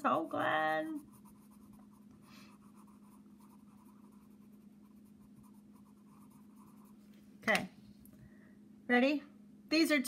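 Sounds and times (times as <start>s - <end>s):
pencil scratching on paper: 0.0s - 7.1s
steady low hum: 0.0s - 10.0s.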